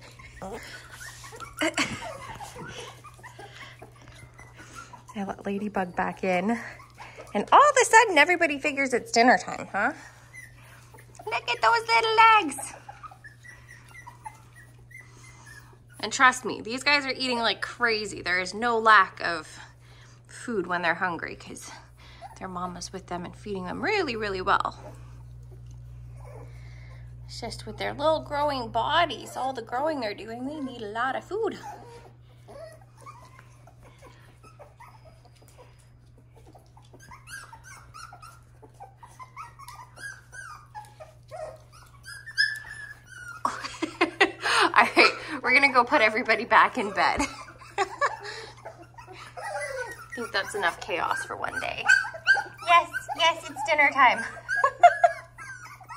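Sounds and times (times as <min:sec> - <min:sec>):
puppies whimpering: 0:00.0 - 0:55.9.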